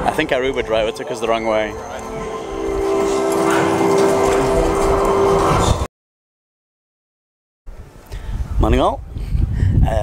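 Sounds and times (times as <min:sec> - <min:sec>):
held low tone: 0:00.0 - 0:05.9.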